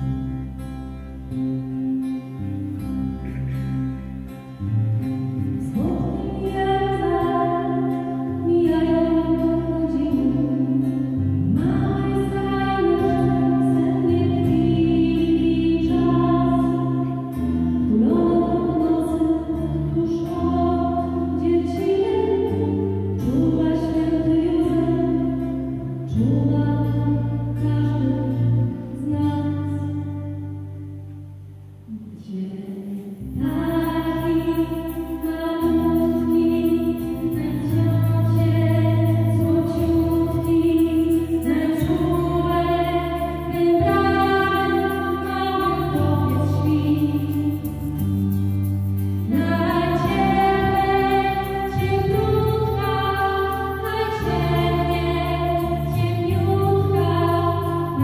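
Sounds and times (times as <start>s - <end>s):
acoustic and electric guitar: 0.0s - 58.0s
women singing a carol: 5.6s - 30.2s, 32.2s - 48.0s, 49.3s - 58.0s
women singing long notes: 31.9s - 47.8s, 49.3s - 58.0s.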